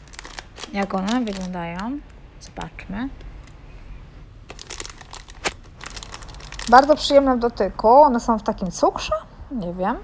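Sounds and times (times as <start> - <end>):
plastic candy bag crinkling: 0.0 - 3.6, 4.4 - 7.4.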